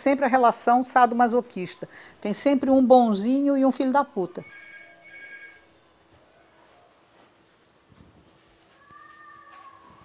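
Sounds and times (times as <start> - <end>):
bell-like ring: 4.4 - 5.6.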